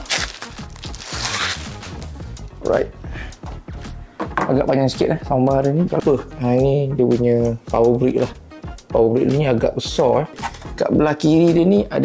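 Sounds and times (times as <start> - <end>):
plastic wrapping crinkling: 0.0 - 2.1
background music: 0.0 - 12.0.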